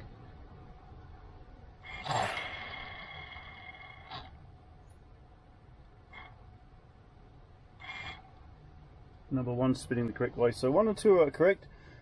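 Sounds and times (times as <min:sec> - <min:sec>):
drone motor whine: 0:01.9 - 0:04.5.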